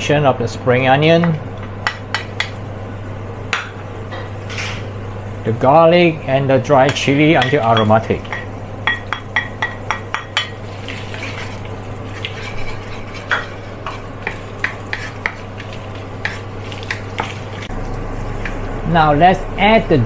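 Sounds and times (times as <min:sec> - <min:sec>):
steady low hum: 0:00.0 - 0:20.0
oil sizzling: 0:01.3 - 0:19.6
spatula scraping wok: 0:09.4 - 0:17.7.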